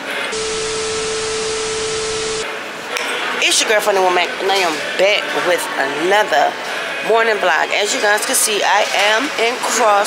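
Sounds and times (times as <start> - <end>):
steady mid-pitched tone: 0.3 - 2.4
tv static hiss: 0.4 - 2.4.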